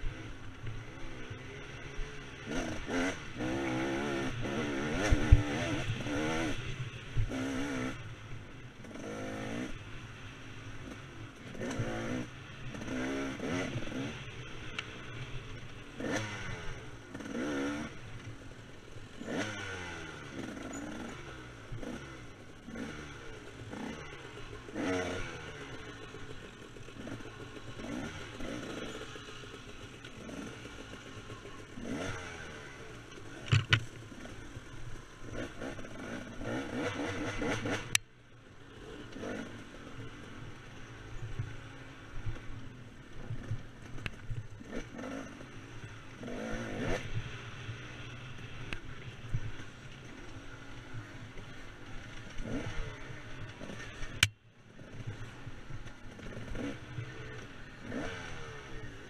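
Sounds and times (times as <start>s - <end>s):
dirt bike engine revving: 0.0s - 8.1s, 8.8s - 9.8s, 10.7s - 38.0s, 38.7s - 59.0s.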